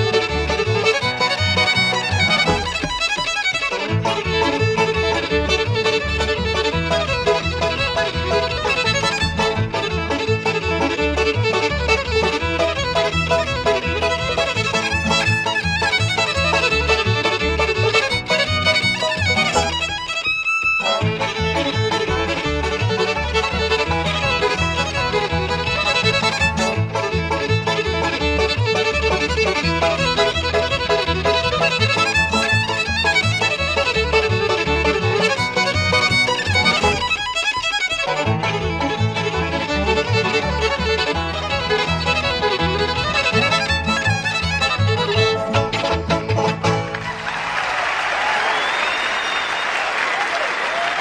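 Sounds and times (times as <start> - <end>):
bluegrass band playing: 0.0 - 47.5
fiddle: 0.0 - 49.6
bass beat: 0.1 - 19.9.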